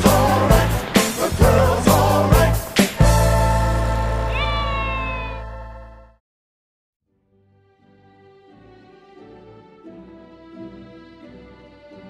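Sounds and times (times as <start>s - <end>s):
background music held chord: 0.0s - 4.4s, 7.1s - 12.0s.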